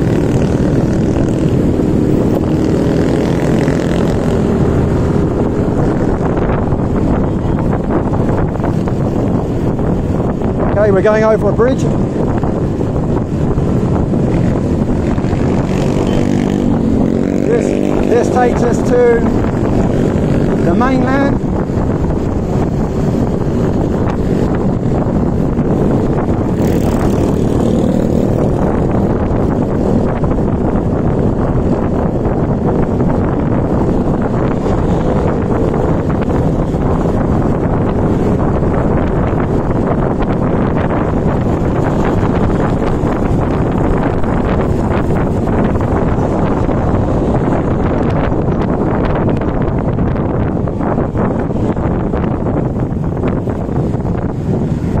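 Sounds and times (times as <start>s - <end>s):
motorbike traffic: 0.0s - 55.0s
wind rushing over microphone: 0.0s - 55.0s.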